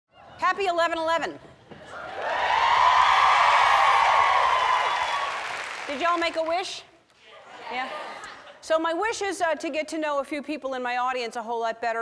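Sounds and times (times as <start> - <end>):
audience applauding: 2.0 - 6.6.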